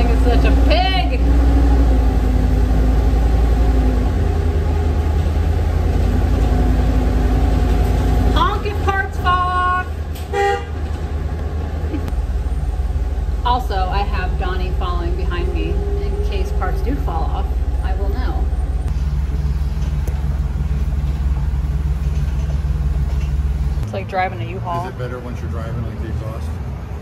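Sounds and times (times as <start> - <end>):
bus engine low rumble: 0.0 - 27.0
vehicle horn toot: 9.6 - 10.8.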